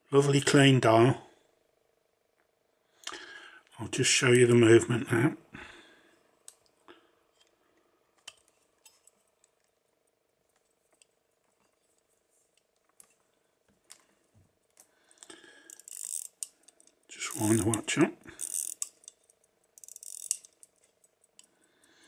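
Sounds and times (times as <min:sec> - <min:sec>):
faint steady hum: 0:00.0 - 0:22.0.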